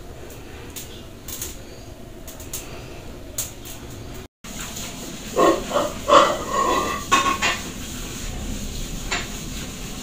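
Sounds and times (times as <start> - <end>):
animal calling: 5.4 - 7.0.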